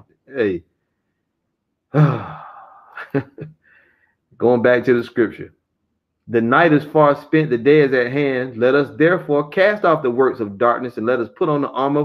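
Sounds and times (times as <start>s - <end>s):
man sighing: 1.9s - 4.0s.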